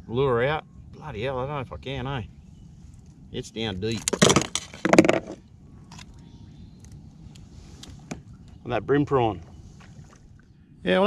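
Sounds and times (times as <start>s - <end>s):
crackling handling noise: 3.8s - 6.2s.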